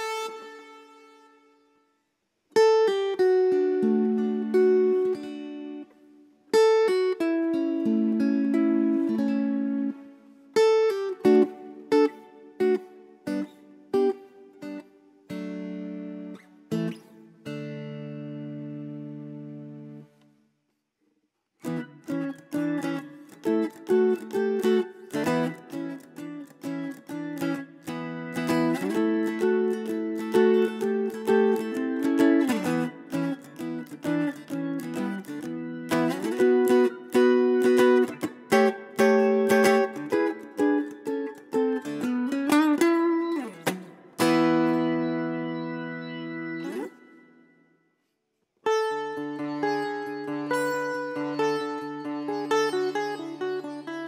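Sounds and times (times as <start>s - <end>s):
mountain dulcimer plucked notes: 28.1s - 47.1s.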